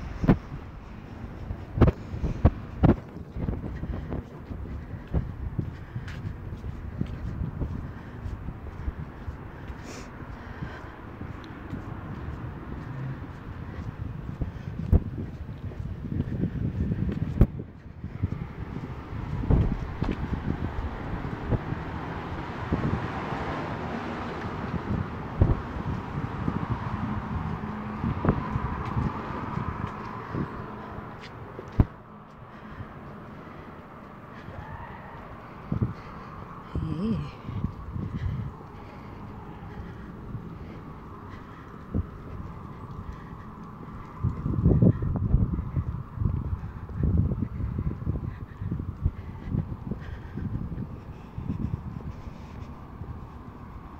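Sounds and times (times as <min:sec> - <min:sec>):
wind rumbling on microphone: 0:00.0 - 0:53.9.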